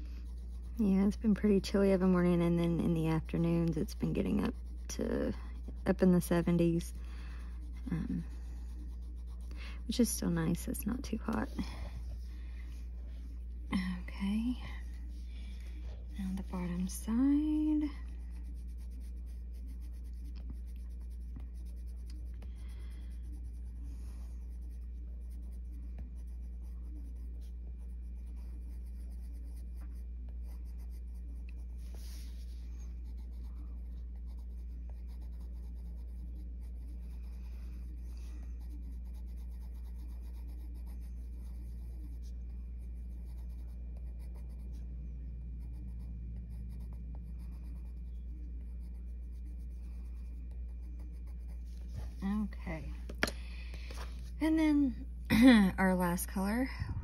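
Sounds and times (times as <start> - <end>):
pencil scratching on paper: 0.0 - 13.4, 14.2 - 52.5
steady low hum: 0.0 - 57.0.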